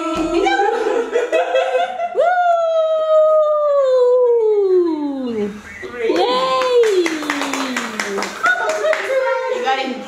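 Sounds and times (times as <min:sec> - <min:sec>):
people clapping: 0:05.8 - 0:09.5.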